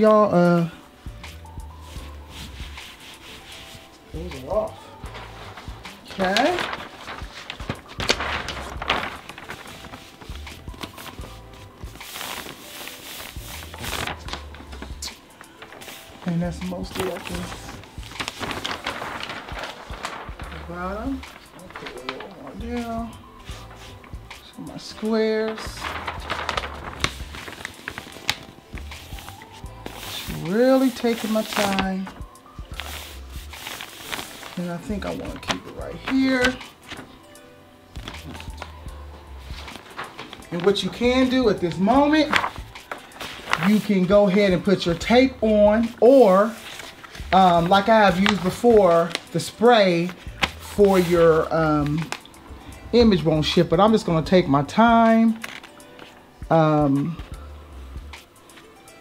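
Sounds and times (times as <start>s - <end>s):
music playing: 0.0s - 59.0s
hands rubbing fabric blanket: 1.2s - 4.5s, 5.1s - 14.6s, 25.8s - 31.9s, 32.7s - 34.6s
paper rustling and crackling: 1.8s - 57.4s.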